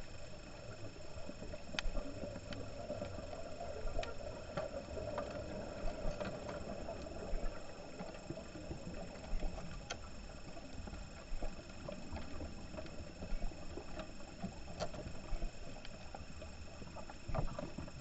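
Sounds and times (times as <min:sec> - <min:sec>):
faint high whine: 0:00.0 - 0:18.0
underwater low hiss: 0:00.0 - 0:18.0.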